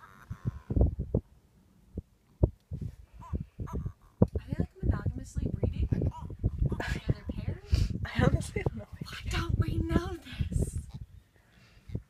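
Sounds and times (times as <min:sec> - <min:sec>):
birds clucking calls: 0:00.0 - 0:01.3, 0:02.4 - 0:04.7, 0:05.8 - 0:09.4.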